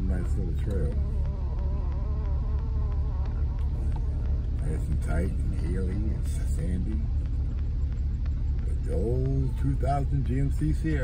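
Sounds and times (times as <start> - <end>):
engine and road rumble: 0.0 - 11.0
wavering buzz: 0.0 - 11.0.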